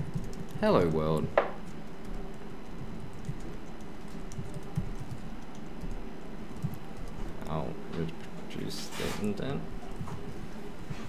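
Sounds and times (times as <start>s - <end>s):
typing on laptop keyboard: 0.0s - 7.2s.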